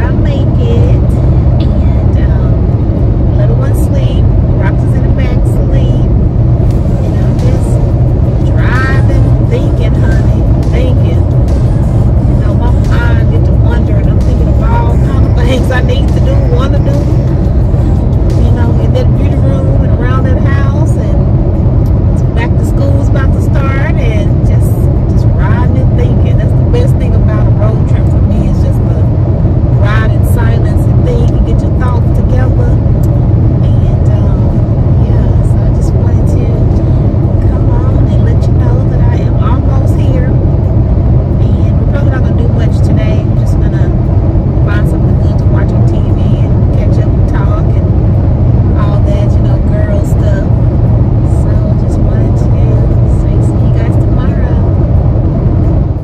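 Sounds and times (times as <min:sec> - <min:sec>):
woman talking: 0:00.0 - 0:02.6, 0:03.3 - 0:11.6, 0:12.4 - 0:17.4, 0:18.3 - 0:21.3, 0:22.2 - 0:29.1, 0:29.8 - 0:40.5, 0:41.3 - 0:44.0, 0:44.6 - 0:48.0, 0:48.7 - 0:54.8
car road noise rumble: 0:00.0 - 0:56.0.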